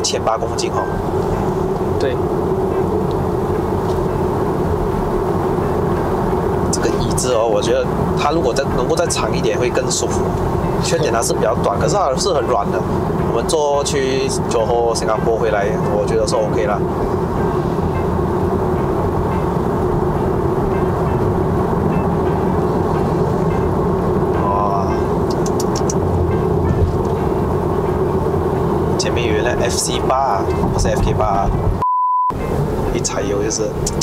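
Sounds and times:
steady low hum: 0.0 - 31.8
road and tyre noise: 0.0 - 34.0.

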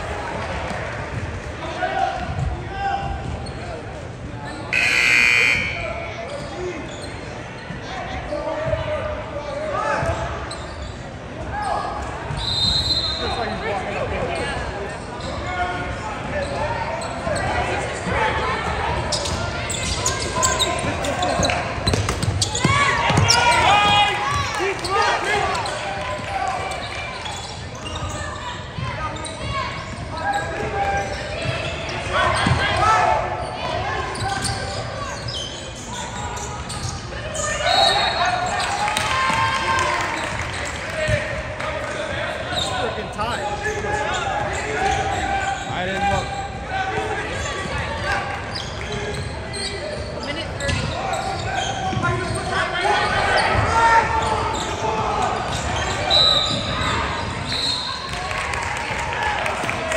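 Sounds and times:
crowd and players voices: 0.0 - 59.9
loud calls: 4.7 - 6.0
basketball bouncing on court: 20.5 - 24.5, 32.4 - 32.7.

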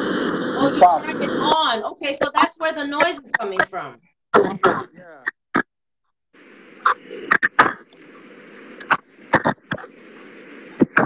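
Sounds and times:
steady hiss: 0.0 - 3.7, 6.4 - 11.0.

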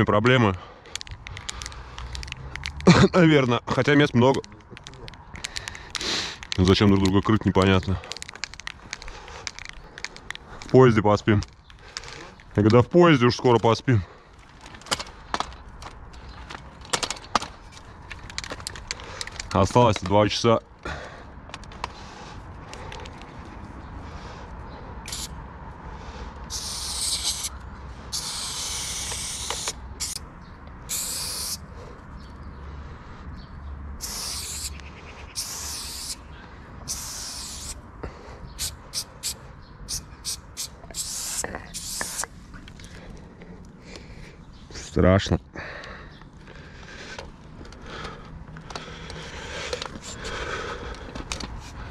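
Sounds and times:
spray paint can hissing: 25.1 - 25.3, 26.5 - 30.2, 30.9 - 31.6, 34.0 - 36.2, 36.8 - 37.8, 38.6 - 42.3.

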